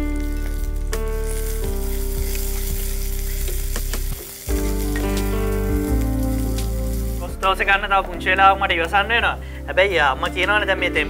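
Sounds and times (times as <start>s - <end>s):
food sizzling in hot oil: 0.0s - 8.3s
background music of held notes: 0.0s - 11.0s.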